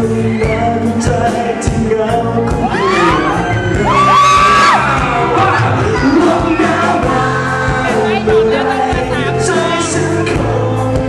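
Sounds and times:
live pop band: 0.0s - 11.0s
audience whooping: 2.6s - 7.1s.

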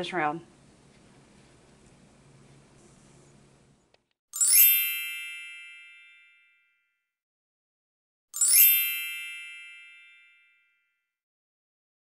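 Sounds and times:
shimmering bell-like chime: 4.4s - 7.0s, 8.4s - 11.0s.

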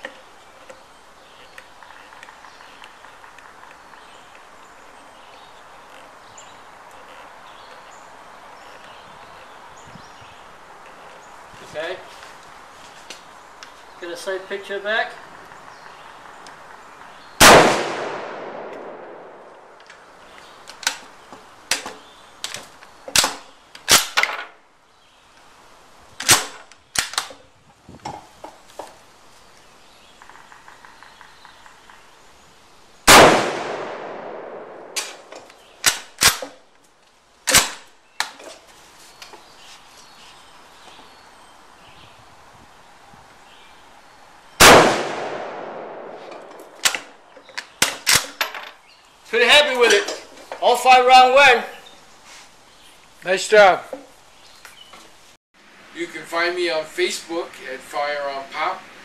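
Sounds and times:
rifle shots with echo: 17.4s - 19.7s, 33.1s - 35.3s, 44.6s - 46.8s.

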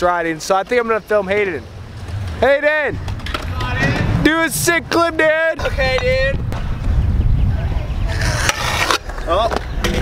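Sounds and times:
scooter wheels rolling on concrete: 0.0s - 10.0s.

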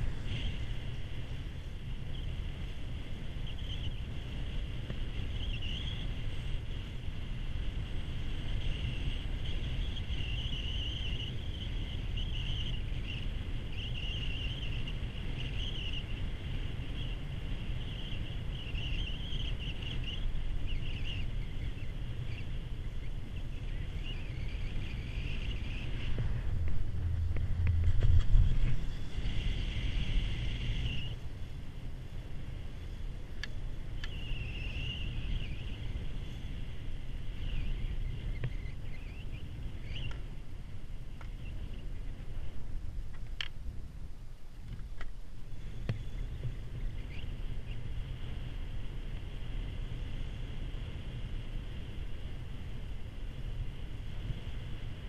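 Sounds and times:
high wavering whine: 0.0s - 44.5s
wind on microphone: 0.0s - 55.0s
chairlift rumble: 24.6s - 34.0s.

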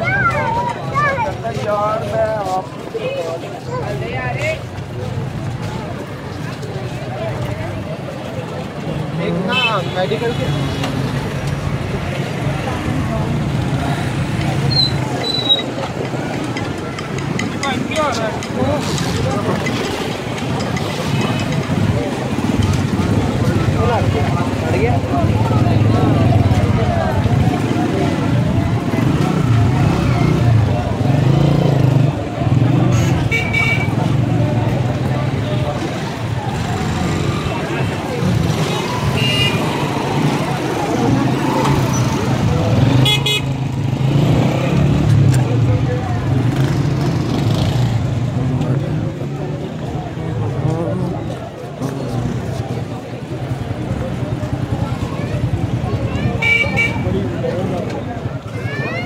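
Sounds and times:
many people's voices: 0.0s - 59.0s
motorcycle and vehicle engines: 0.0s - 59.0s.

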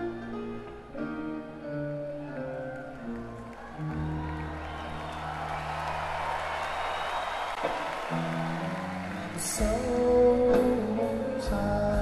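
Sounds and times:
electric guitar chords: 0.0s - 6.4s, 7.6s - 12.0s.

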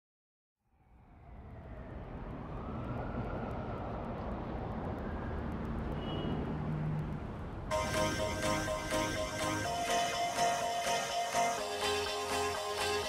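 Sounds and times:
faint rising whine: 0.7s - 5.7s
instrumental music with plucked notes: 7.7s - 13.0s.

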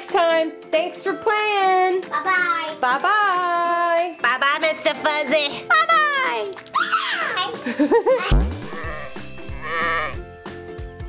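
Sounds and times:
upbeat jingle with drum beat: 8.2s - 10.3s
cartoon sheep bleat: 8.3s - 10.2s.

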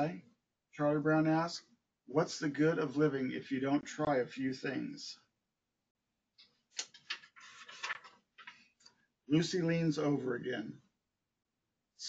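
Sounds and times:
paper pages rustling: 6.8s - 8.7s.

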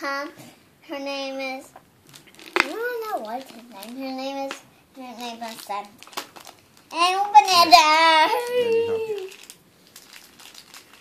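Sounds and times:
plastic package crinkling: 2.0s - 11.0s
person speaking: 6.9s - 9.4s.

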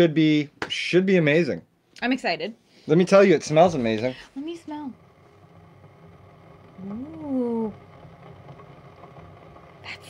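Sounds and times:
steady low hum: 3.1s - 10.0s.

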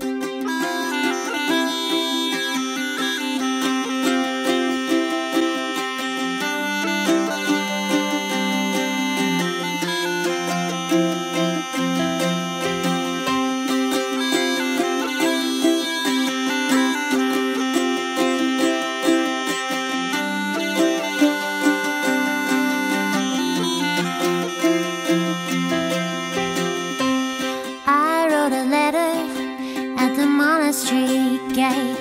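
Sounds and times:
bagpipes playing tune: 0.0s - 27.9s
strummed acoustic guitar: 0.0s - 32.0s.

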